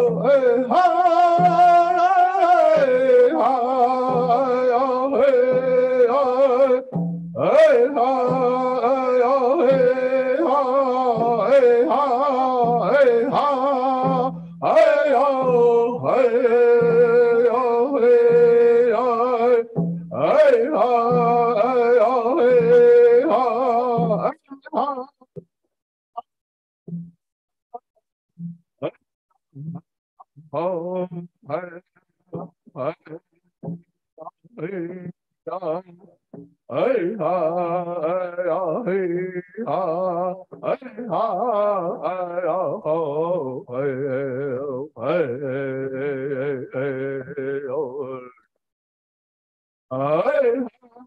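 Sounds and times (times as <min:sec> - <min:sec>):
men singing wavering phrases: 0:00.0 - 0:25.1, 0:36.7 - 0:48.3.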